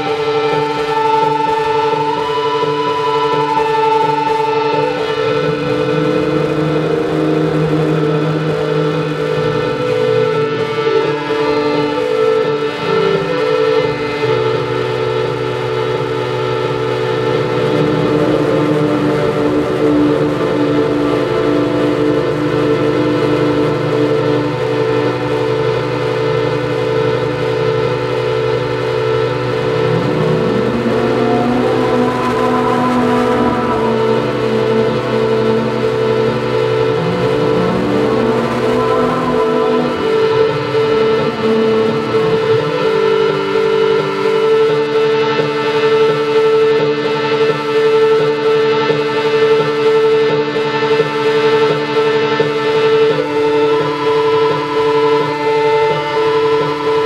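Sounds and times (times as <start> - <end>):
electronic drone music: 0.0 - 57.0.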